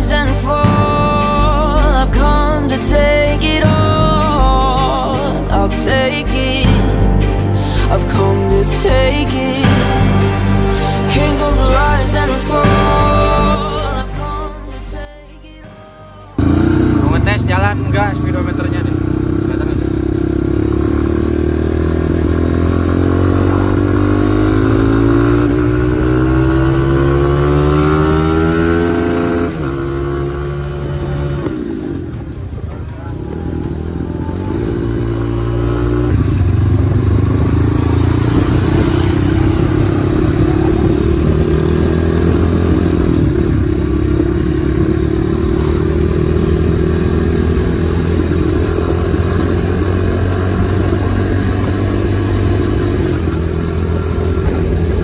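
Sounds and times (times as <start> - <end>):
motorcycle engine revving: 16.4 - 55.0.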